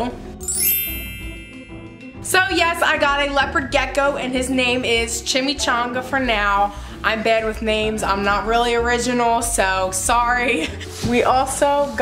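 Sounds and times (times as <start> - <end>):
bright chiming with upward sweep: 0.4 - 2.9.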